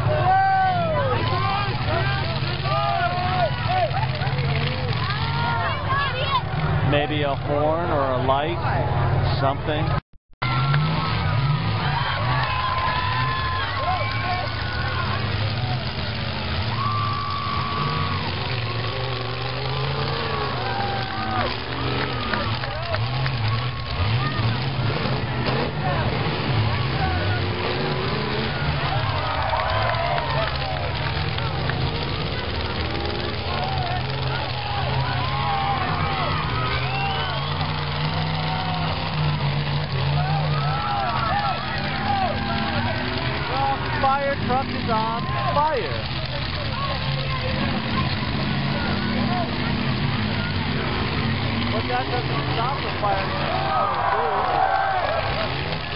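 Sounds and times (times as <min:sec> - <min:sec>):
car engines revving: 0:00.0 - 0:55.9
crowd chatter and calls: 0:00.0 - 0:55.9.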